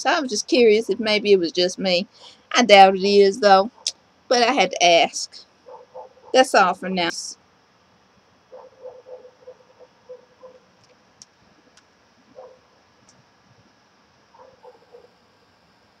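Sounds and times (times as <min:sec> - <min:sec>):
distant dog barking: 0:05.6 - 0:06.4, 0:08.5 - 0:10.7, 0:12.3 - 0:12.8, 0:14.3 - 0:15.2.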